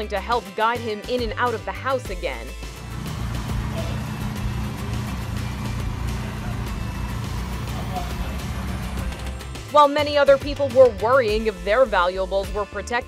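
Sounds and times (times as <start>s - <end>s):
background music: 0.0s - 13.0s
car engine idling: 2.7s - 9.6s.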